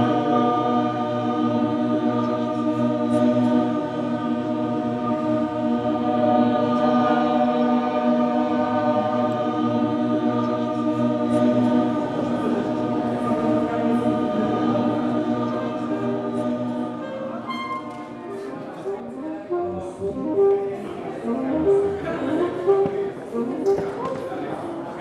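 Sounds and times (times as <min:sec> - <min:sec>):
voices singing held chord: 0:00.0 - 0:25.0.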